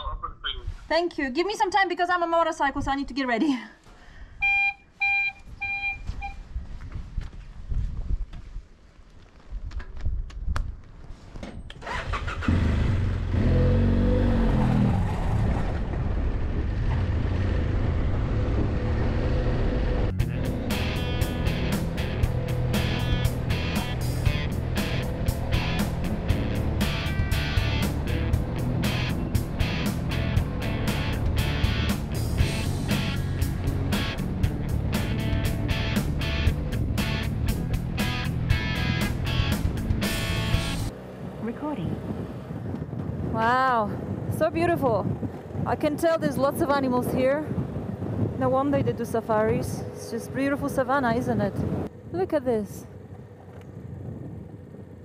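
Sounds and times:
motorcycle engine revving: 11.8s - 43.2s
background music with steady beat: 20.2s - 40.9s.

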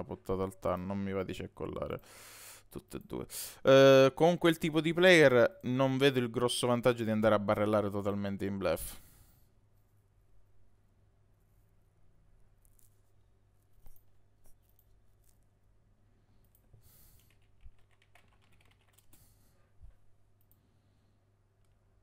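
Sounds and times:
computer keyboard and mouse clicks: 16.5s - 19.2s.

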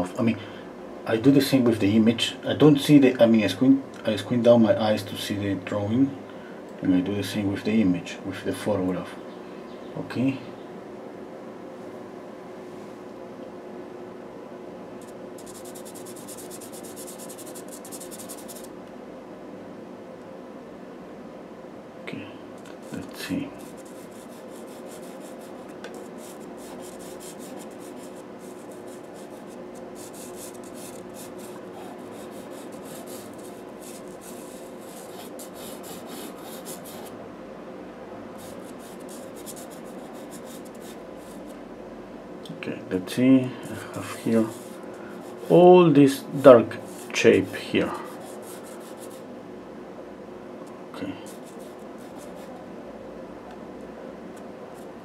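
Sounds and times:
steady low hum: 0.0s - 55.0s
pastel pencil scratching on paper: 15.0s - 18.7s, 23.6s - 37.1s, 38.4s - 41.5s, 43.9s - 45.6s, 46.4s - 49.2s, 51.2s - 52.5s.

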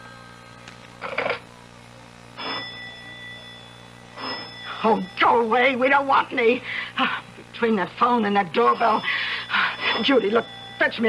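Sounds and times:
doorbell ringing: 2.4s - 5.8s, 8.6s - 11.0s
telephone bell ringing: 2.4s - 5.8s, 8.6s - 11.0s.

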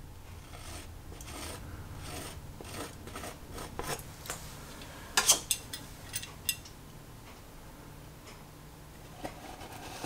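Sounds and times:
painting knife scraping canvas: 0.4s - 4.1s, 9.1s - 10.0s.

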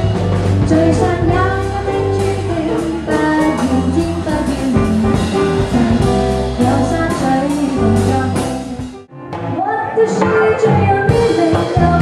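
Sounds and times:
electric bass guitar: 0.0s - 9.6s
drum kit: 0.0s - 12.0s
jazz band playing: 0.0s - 12.0s.

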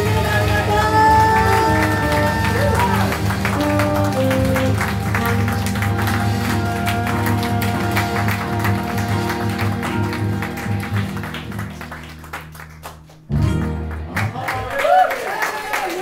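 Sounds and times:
saxophone: 0.0s - 11.6s
percussion: 0.0s - 12.2s
guitars: 0.0s - 12.3s, 13.3s - 14.5s
bass: 0.0s - 15.0s.

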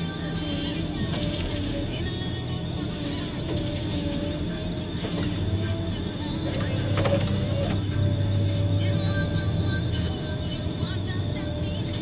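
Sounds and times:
diesel engine running: 0.0s - 12.0s
hydraulic whine: 0.0s - 12.0s.

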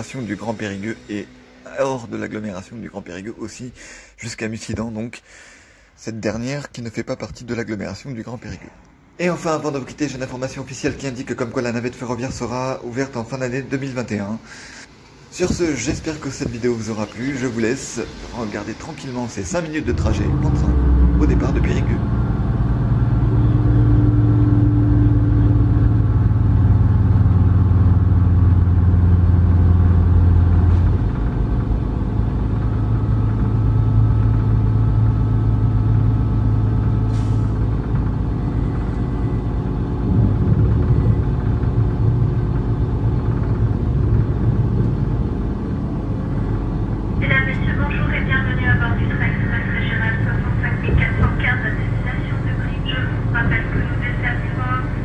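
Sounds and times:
train diesel engine droning: 0.0s - 4.2s, 8.7s - 55.0s
person speaking: 6.0s - 22.1s.

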